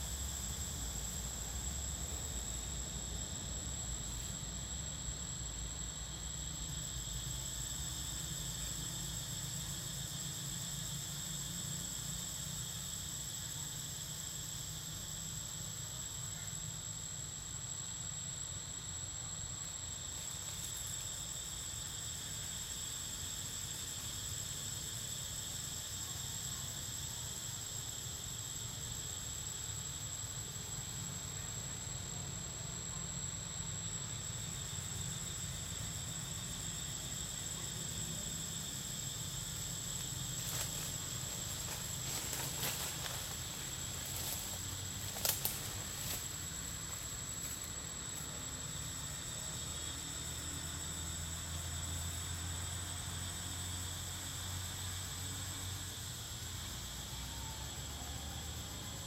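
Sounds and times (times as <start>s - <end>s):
insect chorus whine: 0.0s - 59.0s.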